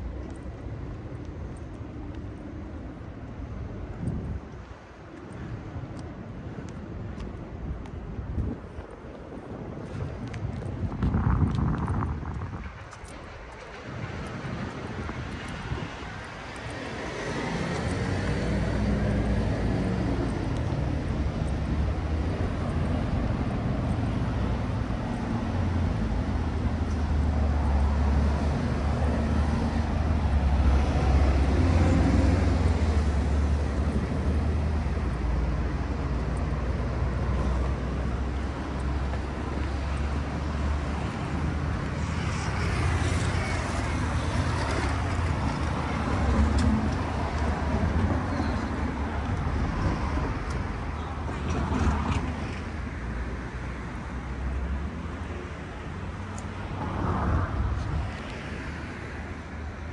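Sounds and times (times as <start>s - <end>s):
low city rumble: 0.0s - 59.9s.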